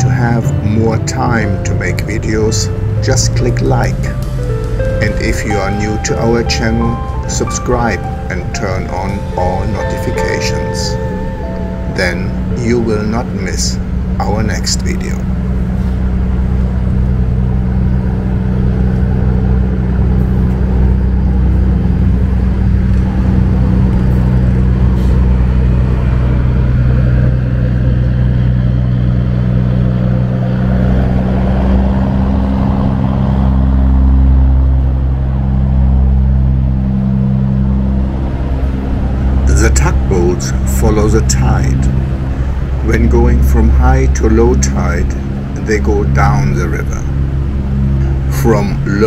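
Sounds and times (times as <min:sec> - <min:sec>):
deep engine drone: 0:00.0 - 0:49.0
traffic noise: 0:00.0 - 0:49.0.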